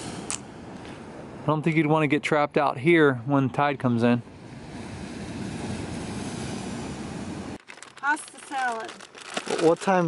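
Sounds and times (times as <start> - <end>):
sea rushing at rocky shore: 4.4 - 7.6.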